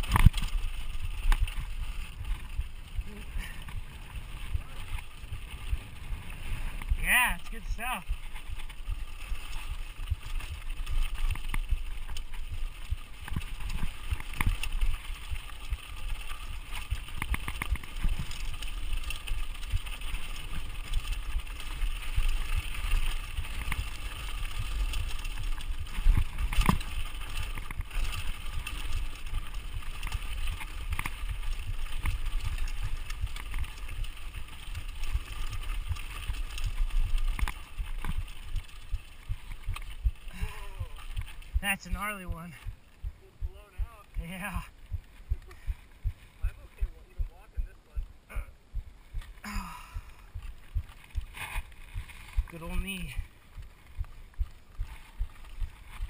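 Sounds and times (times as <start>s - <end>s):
bike rattling over bumps: 0.0s - 56.0s
bike tyres running over dirt and stones: 0.0s - 56.0s.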